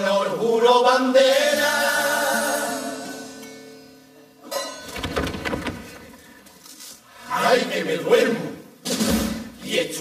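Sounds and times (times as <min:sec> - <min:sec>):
choir singing with guitar: 0:00.0 - 0:03.8, 0:07.2 - 0:08.7.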